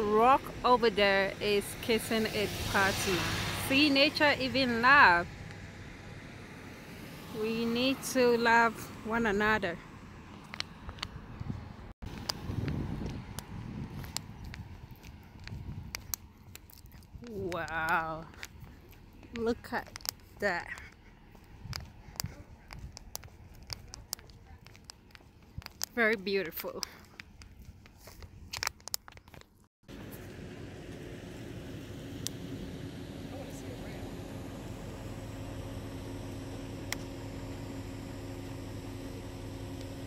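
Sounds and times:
low outdoor rush: 0.0 - 40.0
footsteps on paved road: 7.5 - 31.1.

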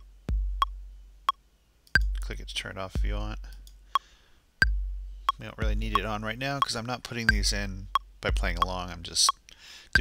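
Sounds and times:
low booming kick drum: 0.2 - 1.0, 2.0 - 2.3, 3.0 - 3.5, 4.6 - 6.2, 7.3 - 8.7
metronome clicks: 0.6 - 2.3, 3.5 - 10.0.

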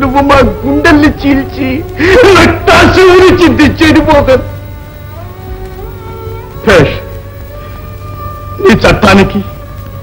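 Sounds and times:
film music with held notes: 0.0 - 10.0
man sobbing: 0.8 - 4.2.

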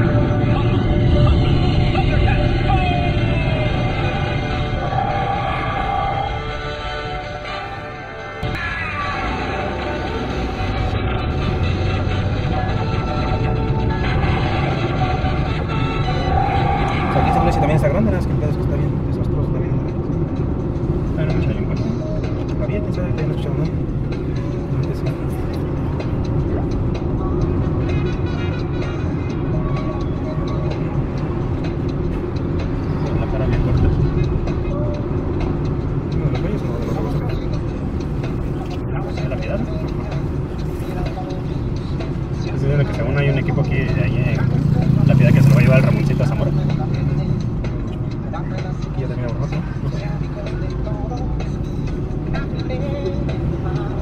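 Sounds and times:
voices: 0.0 - 7.7, 15.7 - 20.1, 32.9 - 54.0
car engine and road noise: 0.0 - 54.0
music playing: 0.0 - 54.0.

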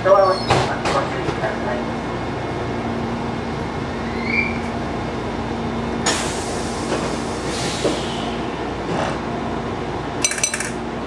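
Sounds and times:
train interior hum: 0.6 - 11.0.

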